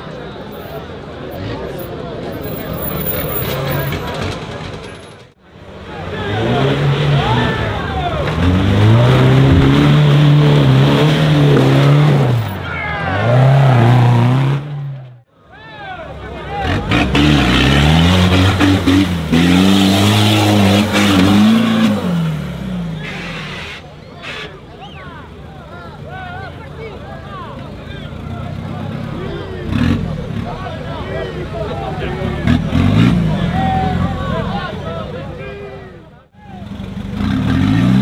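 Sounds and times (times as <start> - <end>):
off-road engines revving hard: 1.2 - 5.0, 5.6 - 15.2, 16.1 - 35.8, 36.5 - 38.0.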